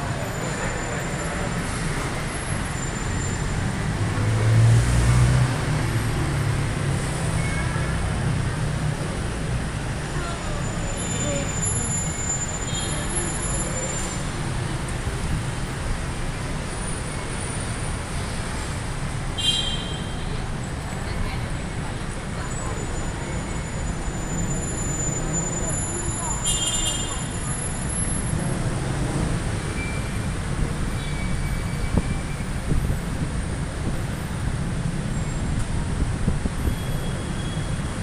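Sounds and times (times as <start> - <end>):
city road traffic: 0.0 - 38.0
heavy vehicle rumble: 0.0 - 38.0.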